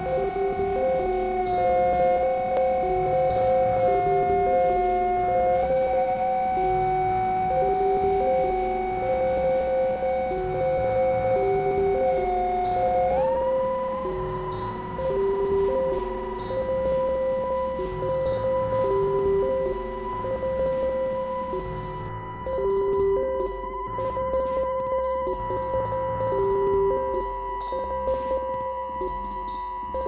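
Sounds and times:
looping two-note pattern: 0.0 - 30.0
synth drone: 0.0 - 30.0
ticking hi-hats: 0.0 - 30.0.

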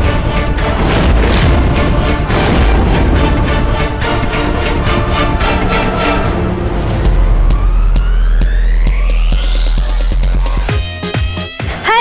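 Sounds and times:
rising synth sweep: 0.0 - 10.8
electronic music with heavy bass: 7.3 - 12.0.

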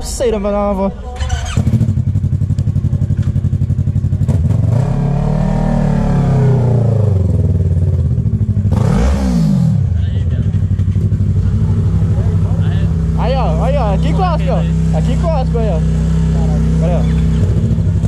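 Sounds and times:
motorcycle engines idling: 0.0 - 18.0
motorcycle engine revving: 1.2 - 18.0.

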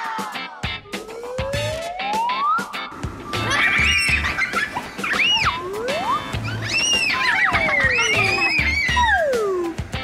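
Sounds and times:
upbeat music with low beat: 0.0 - 10.0
sliding whistle-like tones: 5.1 - 9.8.

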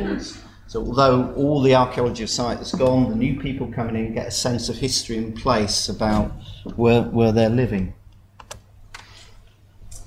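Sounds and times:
quiet room hum: 0.0 - 10.0.

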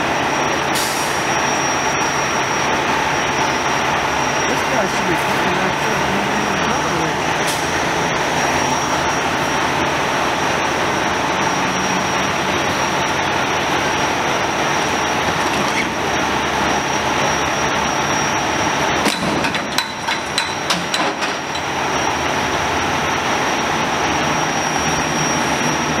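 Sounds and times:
idling engines and traffic: 0.0 - 26.0
sharp knocks: 19.0 - 21.7.

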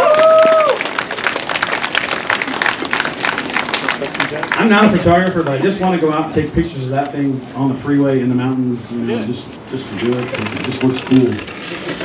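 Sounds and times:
crowd applauding: 0.0 - 5.6.

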